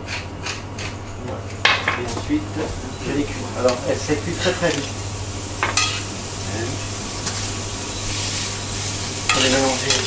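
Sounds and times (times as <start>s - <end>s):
courgette sizzling in frying pan: 2.2s - 10.0s
metal tongs clinking on pan: 5.6s - 6.0s, 9.3s - 10.0s.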